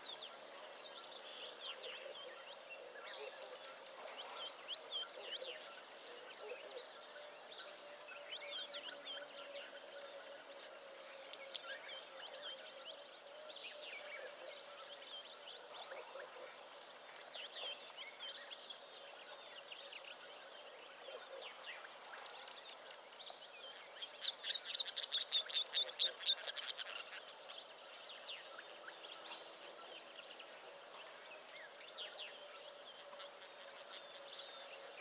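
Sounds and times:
insect whine: 0.0 - 35.0.

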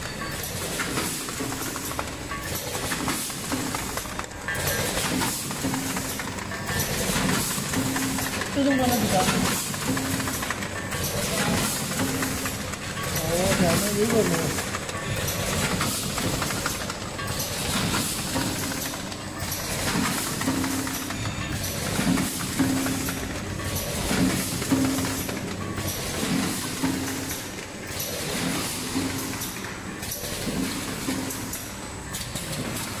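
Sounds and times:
packing machine clatter: 0.0 - 33.0.

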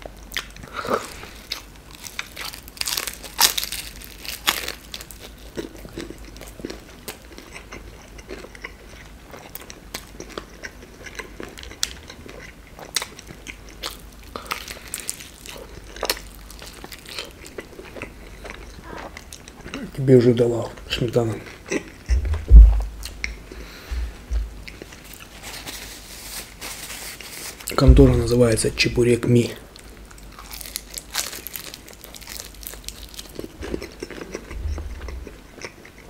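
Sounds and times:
crunchy biting and chewing: 0.2 - 20.0, 29.8 - 36.0.

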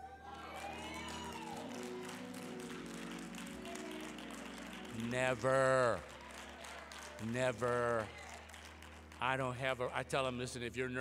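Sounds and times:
church organ sustained chords: 0.0 - 11.0.

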